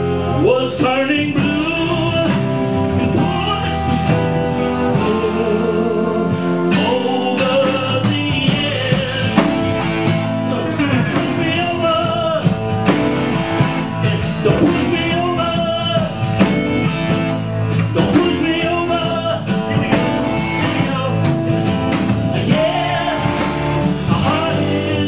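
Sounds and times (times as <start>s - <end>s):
live folk-rock band: 0.0s - 25.0s
strummed acoustic guitar: 0.0s - 25.0s.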